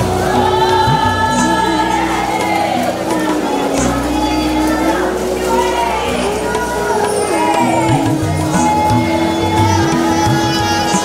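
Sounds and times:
low instrumental accompaniment: 0:00.0 - 0:11.0
voices singing together: 0:00.0 - 0:11.0.

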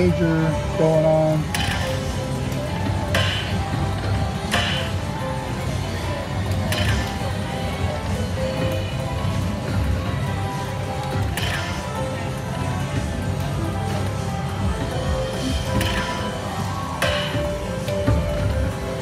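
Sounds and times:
casino background noise: 0:00.0 - 0:19.0
slot machine music and reels: 0:00.0 - 0:19.0.

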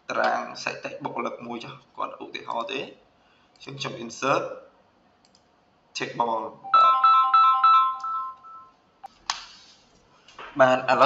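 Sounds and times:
phone ringtone chiming melody: 0:06.6 - 0:08.8.

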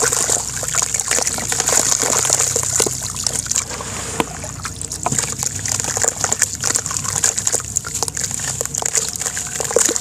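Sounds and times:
hands sloshing through water: 0:00.0 - 0:10.0
water splashes and drips: 0:00.0 - 0:10.0.

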